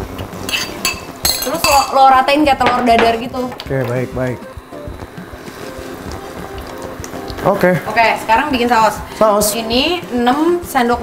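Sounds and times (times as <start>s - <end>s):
ceramic bowl clinking on pan: 0.5s - 2.0s, 2.6s - 3.7s.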